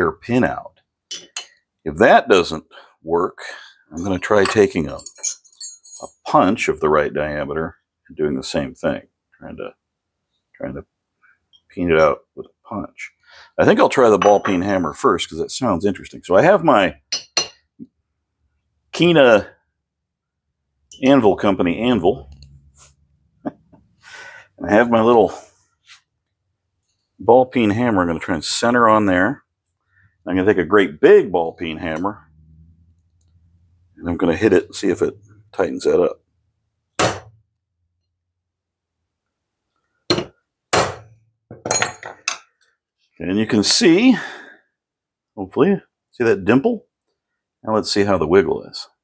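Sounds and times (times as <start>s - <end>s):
metallic clanks and clinks: 4.0s - 6.3s, 41.6s - 42.7s
hammer clinking on steel anvil: 14.2s - 14.6s
hammer striking metal: 37.0s - 37.4s, 40.1s - 42.4s.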